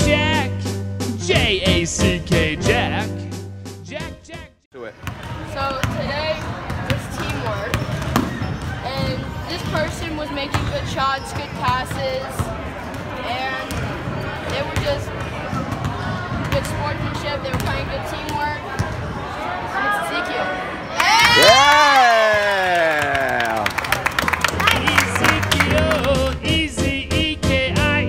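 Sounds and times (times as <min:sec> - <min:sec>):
crowd of voices chattering: 0:04.8 - 0:21.0
basketball bouncing on hardwood floor: 0:05.0 - 0:12.5, 0:15.5 - 0:18.9.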